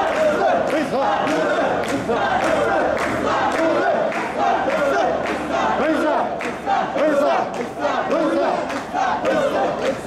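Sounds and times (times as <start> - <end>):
men shouting rhythmic chant: 0.0 - 10.0.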